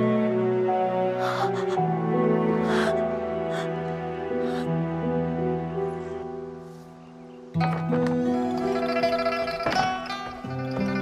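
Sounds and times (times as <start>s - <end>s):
slow sad music: 0.0s - 11.0s.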